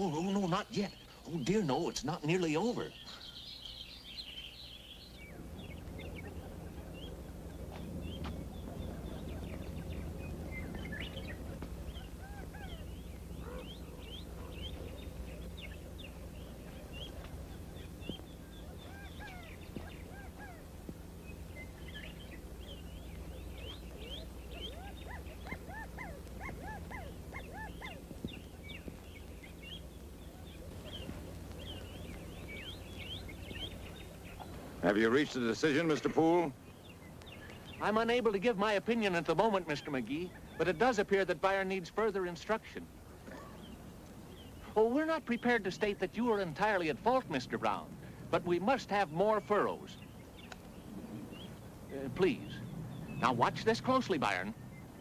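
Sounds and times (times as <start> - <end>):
lower bird calls: 0.0 - 55.0
small birds chirping: 0.0 - 55.0
steady low hum: 0.0 - 55.0.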